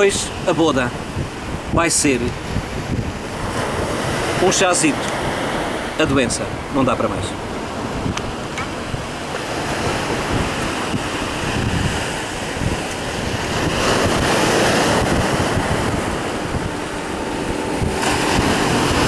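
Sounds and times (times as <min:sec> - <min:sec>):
waves breaking on rocky shore: 0:00.0 - 0:19.0
wind buffeting microphone: 0:00.0 - 0:19.0.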